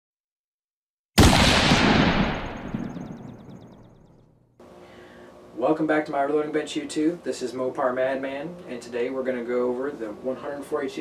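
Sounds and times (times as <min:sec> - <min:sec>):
reverberating gunshot-like boom: 0:01.2 - 0:04.2.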